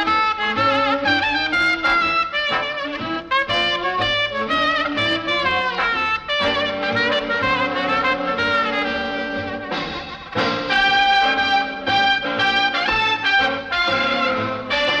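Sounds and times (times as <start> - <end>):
swing big band playing: 0.0 - 15.0
trumpet held notes: 0.0 - 15.0.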